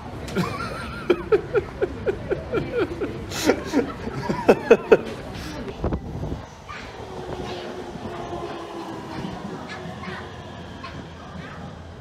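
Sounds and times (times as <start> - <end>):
electric train passing with hum: 0.0 - 12.0.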